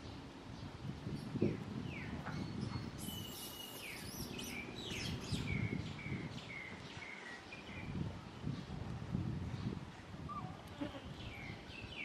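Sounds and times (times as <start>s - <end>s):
outdoor background noise: 0.0s - 12.0s
bird whistling calls: 3.0s - 5.8s, 10.3s - 10.6s.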